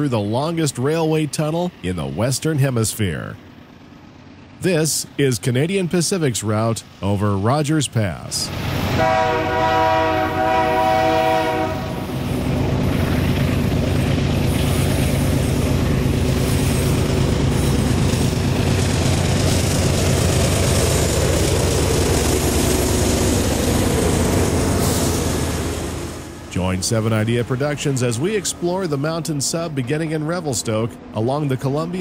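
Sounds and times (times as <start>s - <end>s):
diesel engines running: 0.0s - 32.0s
locomotive horn chord: 8.9s - 12.2s.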